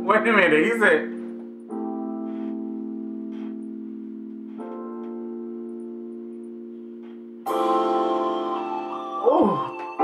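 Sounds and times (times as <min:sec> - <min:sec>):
held keyboard chords: 0:00.0 - 0:10.0.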